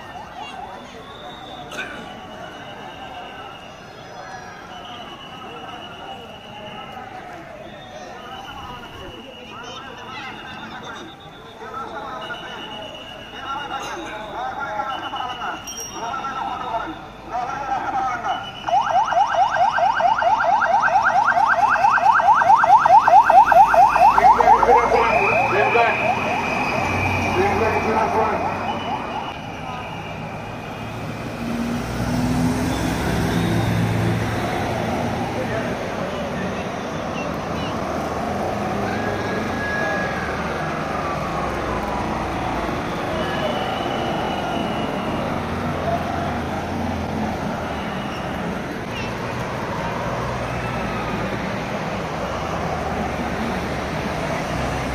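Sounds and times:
cars driving past: 0:00.0 - 0:54.9
voices of onlookers: 0:00.0 - 0:54.9
vehicle siren yelping: 0:16.3 - 0:54.9.

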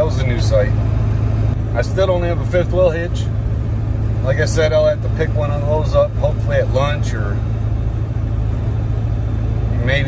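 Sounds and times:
road noise: 0:00.0 - 0:10.0
truck engine drone: 0:00.0 - 0:10.0.

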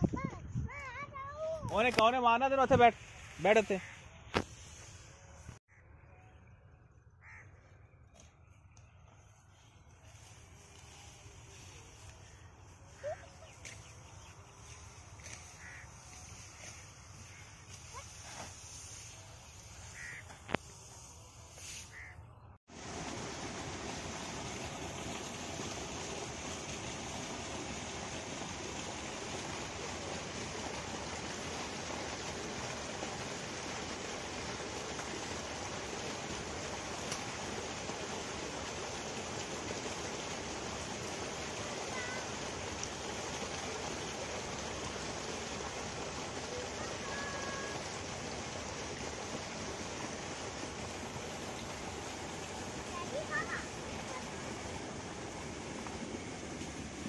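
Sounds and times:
running water rushing: 0:01.3 - 0:05.6, 0:09.4 - 0:22.1, 0:22.7 - 0:57.0.

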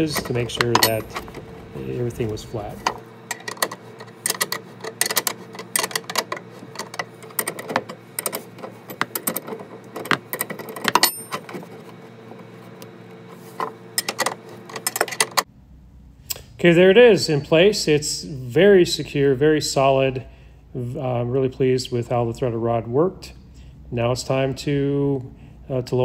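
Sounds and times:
low hum: 0:00.0 - 0:25.9.

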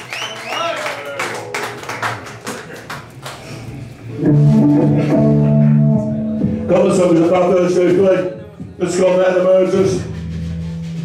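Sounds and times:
electric guitar chord ringing: 0:04.1 - 0:06.8.

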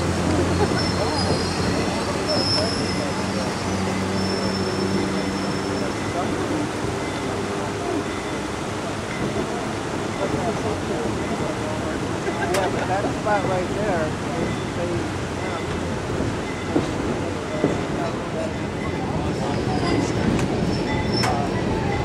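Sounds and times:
moving train rumble: 0:00.0 - 0:22.0.

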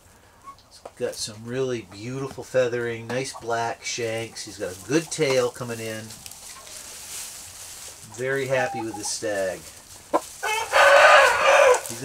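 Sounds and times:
rooster crowing: 0:10.4 - 0:12.0.

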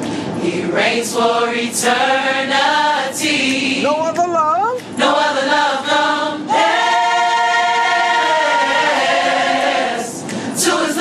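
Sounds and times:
gospel choir singing: 0:00.0 - 0:03.9, 0:04.9 - 0:11.0.

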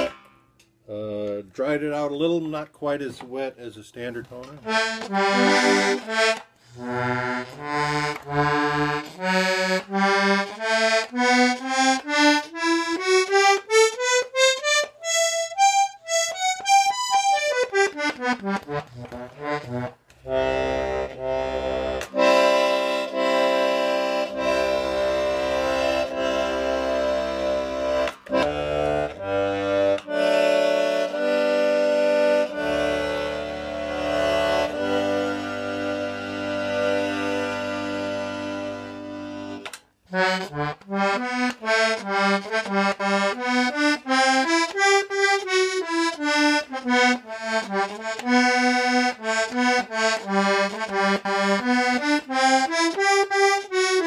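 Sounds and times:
button accordion playing: 0:00.0 - 0:00.5, 0:04.6 - 0:54.0.

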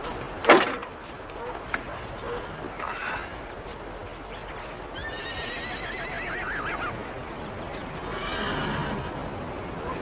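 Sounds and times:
horse whinnying: 0:05.0 - 0:07.0, 0:08.1 - 0:09.1.

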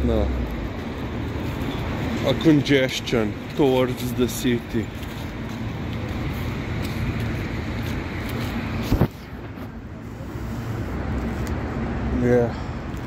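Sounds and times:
busy street traffic: 0:00.0 - 0:13.0.

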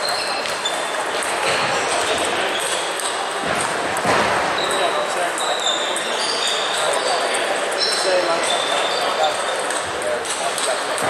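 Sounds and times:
babble of many voices: 0:00.0 - 0:11.0
table tennis balls bouncing: 0:00.0 - 0:11.0.

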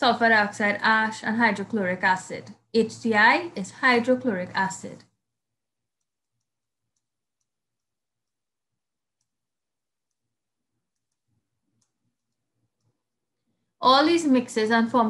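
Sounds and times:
woman's voice: 0:00.0 - 0:05.0, 0:13.8 - 0:15.0.

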